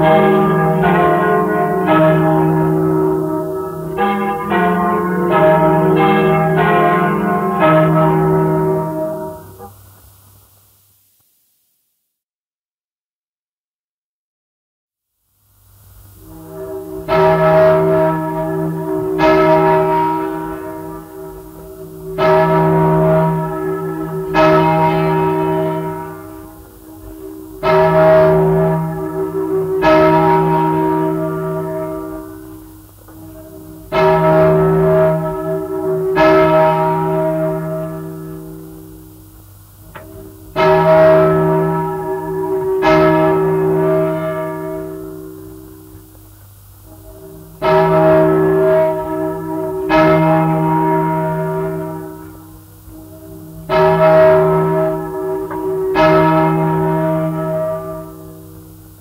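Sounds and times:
large church bell ringing: 0.0 - 9.8, 16.1 - 59.0
faint surface hiss: 0.0 - 12.0.

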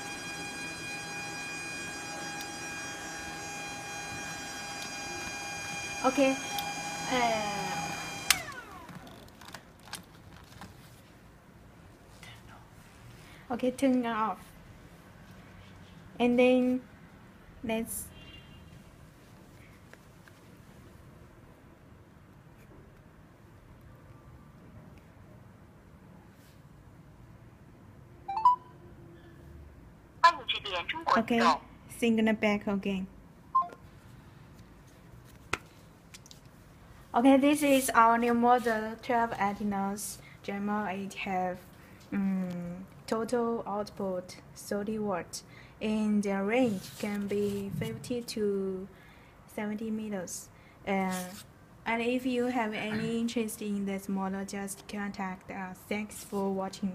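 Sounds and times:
cooling fan whining: 0.0 - 9.6, 52.8 - 53.1
phone electronic beep: 28.3 - 28.7, 33.6 - 33.8.

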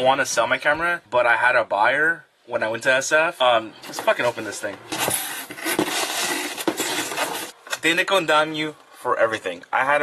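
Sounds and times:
cardboard rustling and scraping: 3.9 - 7.6.

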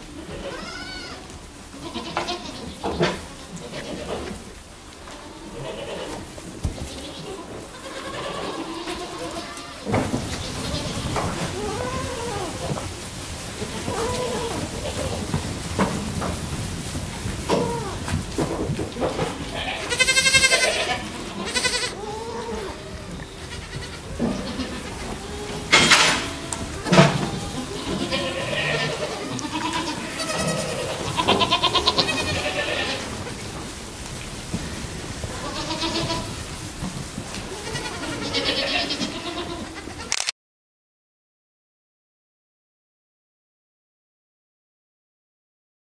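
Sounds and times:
goats bleating: 0.0 - 15.9, 17.2 - 33.7, 35.1 - 40.1.

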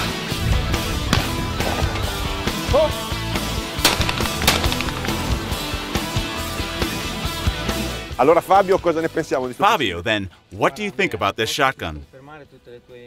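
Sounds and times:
shotgun shots: 3.8 - 5.7.

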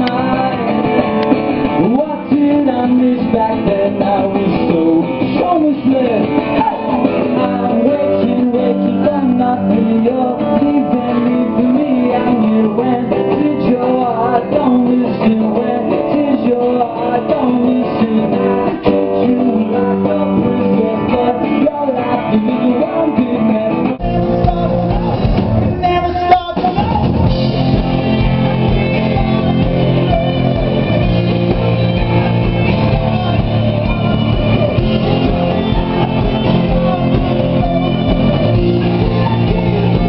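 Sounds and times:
lead singer: 0.0 - 40.0
live rock band playing: 0.0 - 40.0.

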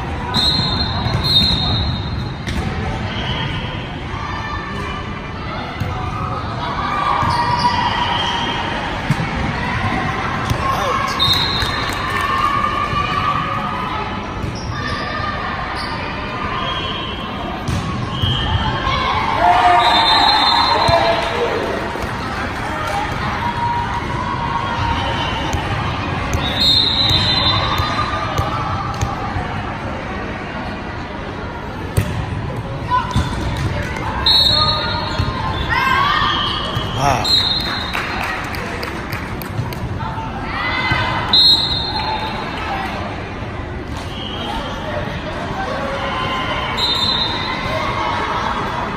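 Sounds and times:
voices echoing in a gym: 0.0 - 48.9
referee whistle blasts: 0.3 - 2.2, 19.6 - 21.2, 26.4 - 27.8, 34.2 - 37.9, 41.3 - 42.3, 46.6 - 47.7
volleyball hits: 17.6 - 18.6
players calling out: 34.0 - 38.1.

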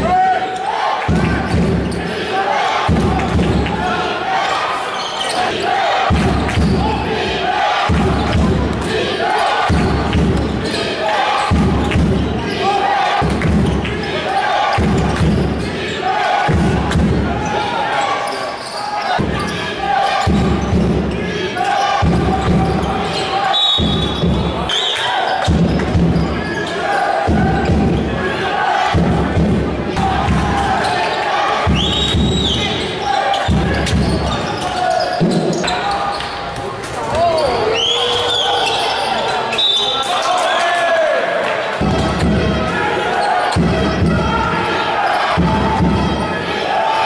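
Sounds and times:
crowd noise: 0.0 - 47.0
sneaker squeaks on court: 4.9 - 5.5, 18.2 - 19.6, 32.0 - 36.6.

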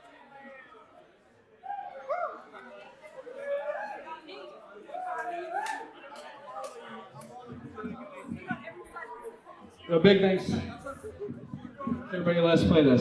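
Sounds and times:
people talking quietly: 0.0 - 13.0.

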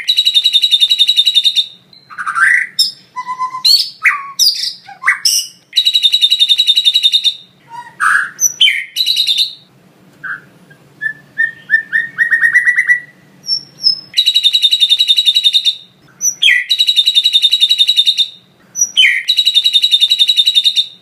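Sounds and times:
bird singing whistles and chips: 0.0 - 21.0.

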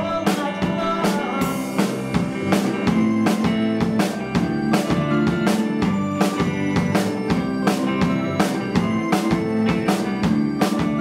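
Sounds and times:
drum kit beat: 0.0 - 11.0
pop band playing live: 0.0 - 11.0.

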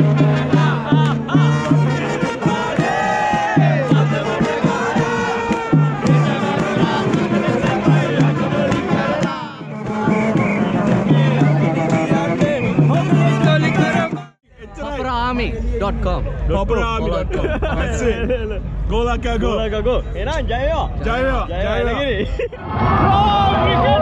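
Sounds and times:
brass band playing upbeat tune: 0.0 - 14.4
crowd singing and cheering: 0.0 - 14.4.

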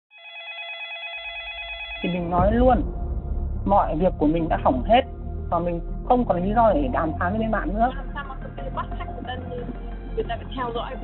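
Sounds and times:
telephone ringing: 0.1 - 2.1
low rumble: 1.9 - 11.0.

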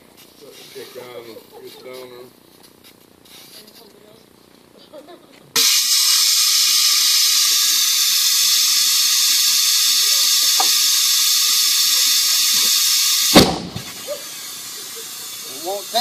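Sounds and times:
compressed air hissing from hose: 2.8 - 3.8, 5.6 - 16.0
loud bang of tire bead seating: 10.0 - 14.1.

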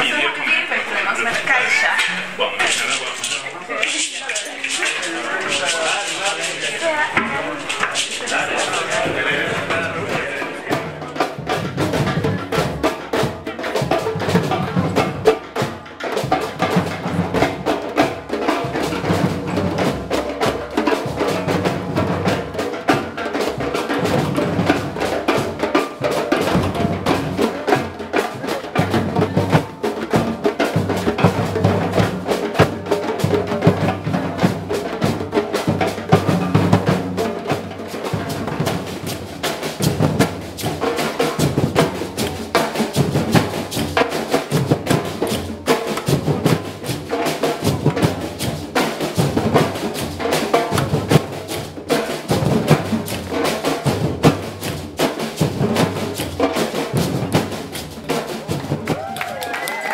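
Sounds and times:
bass drums and hand drums playing: 1.1 - 59.9.

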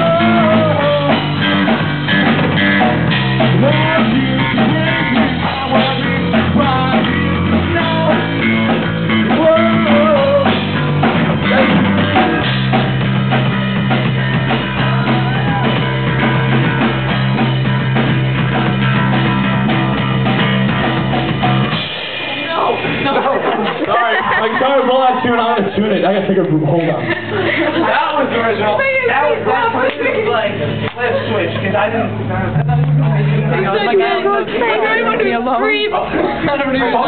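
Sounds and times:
rock band playing live: 0.0 - 37.0
people talking: 22.3 - 37.0.

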